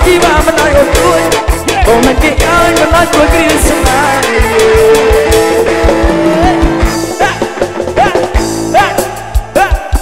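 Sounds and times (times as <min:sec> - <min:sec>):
lead melody long notes: 0:00.0 - 0:08.8
live dance band playing: 0:00.0 - 0:10.0
steady kick drum beat: 0:00.0 - 0:10.0.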